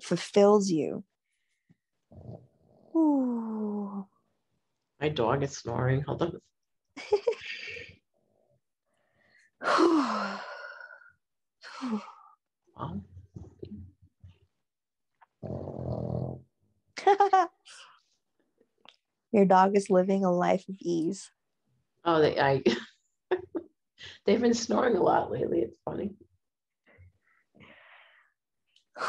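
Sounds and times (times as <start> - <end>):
dog snoring: 2.1 - 2.9, 15.4 - 16.5
faint breath: 8.9 - 12.4, 26.9 - 29.0.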